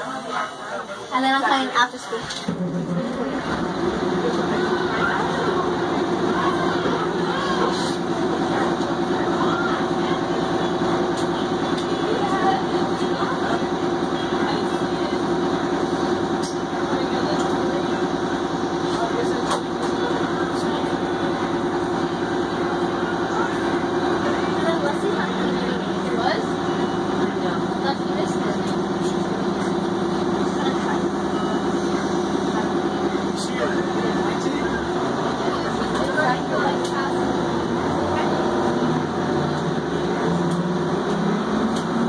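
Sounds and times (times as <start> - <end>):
bus engine idling: 0.0 - 42.0.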